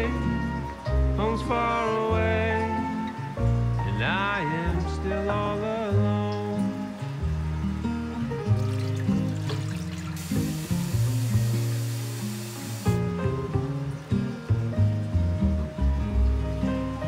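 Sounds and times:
instrumental background music: 0.0s - 17.0s.

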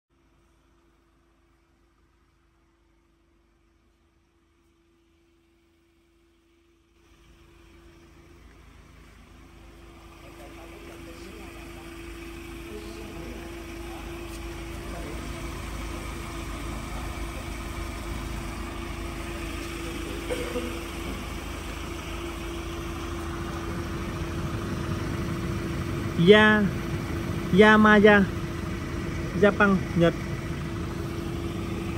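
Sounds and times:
grease pump droning: 7.0s - 31.9s.

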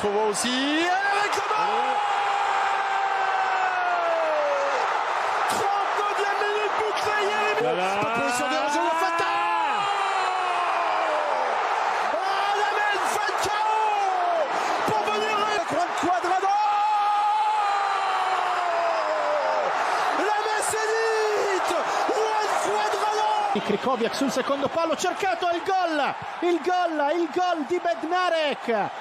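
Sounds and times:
commentator shouting: 0.0s - 2.2s, 5.4s - 10.3s, 12.2s - 17.5s
stadium crowd noise: 0.0s - 29.0s.

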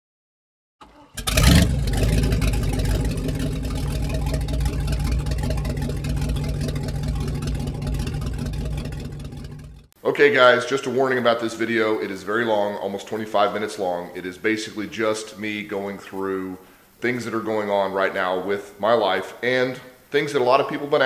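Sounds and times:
engine starting and running: 0.8s - 10.0s.

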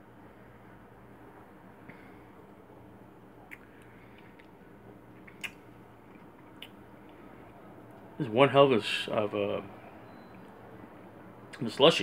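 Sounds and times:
low steady hum: 0.0s - 12.0s
soft mouth clicks: 3.4s - 4.6s, 5.2s - 7.2s.

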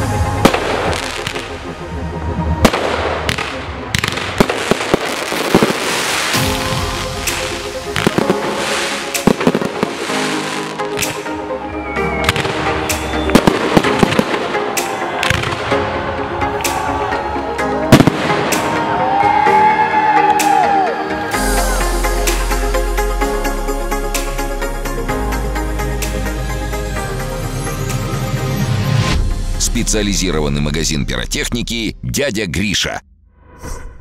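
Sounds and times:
music playing: 0.0s - 32.8s
fireworks bursting with bangs: 0.4s - 1.5s, 2.6s - 11.3s, 13.3s - 15.7s, 17.9s - 18.8s.

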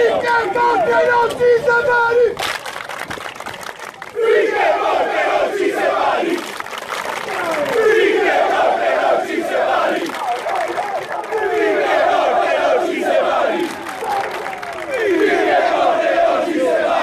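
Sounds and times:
crowd chanting and shouting: 0.0s - 2.4s, 4.0s - 17.0s.

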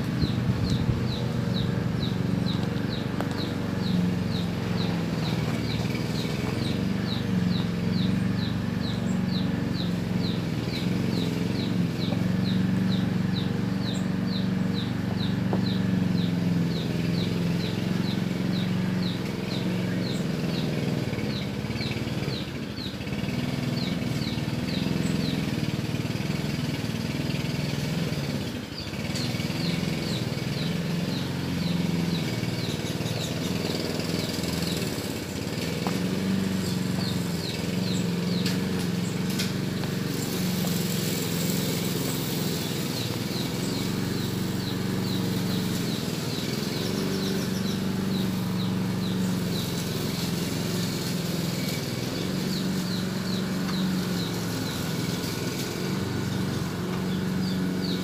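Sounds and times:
engine running with wavering hum: 0.0s - 58.0s.

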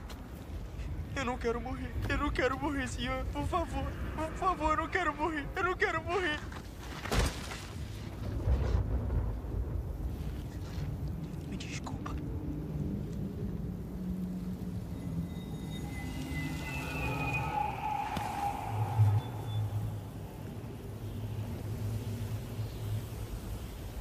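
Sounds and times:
low rumbling ambience: 0.0s - 24.0s
quiet low film score: 0.0s - 24.0s.

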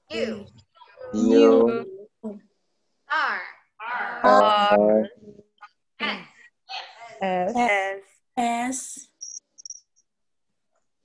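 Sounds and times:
high-pitched chirps: 9.2s - 10.0s.

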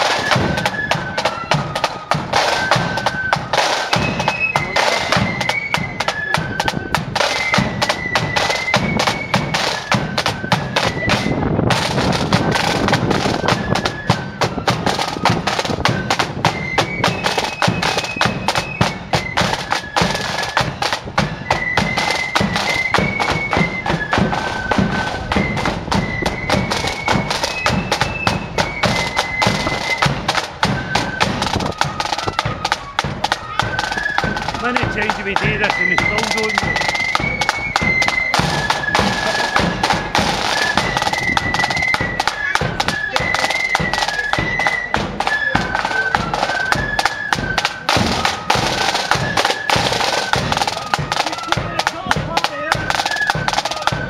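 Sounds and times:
flute melody: 0.0s - 54.0s
side drum beating: 0.0s - 54.0s.

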